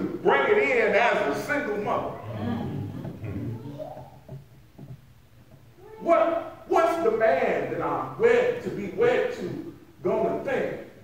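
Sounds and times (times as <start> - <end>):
low steady hum: 0.0 - 11.0
faint pitched vocal sounds: 2.1 - 4.0.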